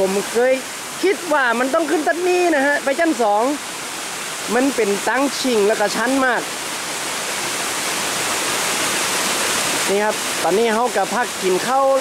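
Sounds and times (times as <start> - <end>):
person speaking: 0.0 - 3.6, 4.5 - 6.5, 9.8 - 12.0.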